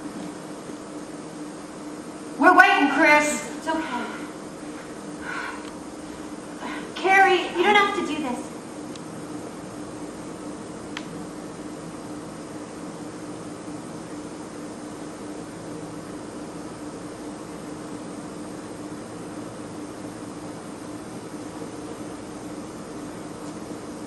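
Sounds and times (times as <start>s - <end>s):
low hum with hiss: 0.0s - 24.0s.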